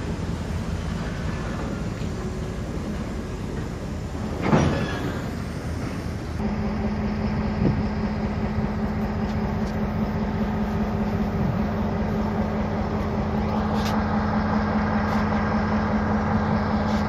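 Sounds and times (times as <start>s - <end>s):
freight train rolling past: 0.0s - 17.0s.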